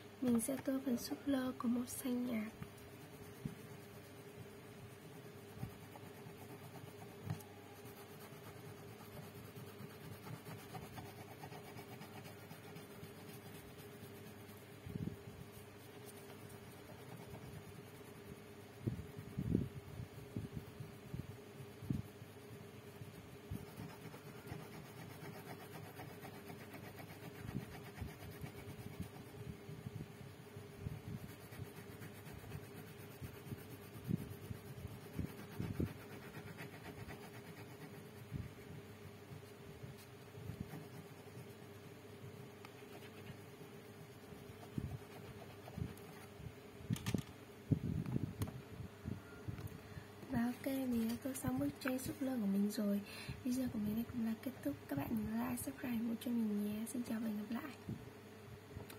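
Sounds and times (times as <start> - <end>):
crayon scratching on paper: 0.2 - 18.5, 21.7 - 29.4, 30.9 - 38.3, 39.3 - 41.8, 42.6 - 46.3.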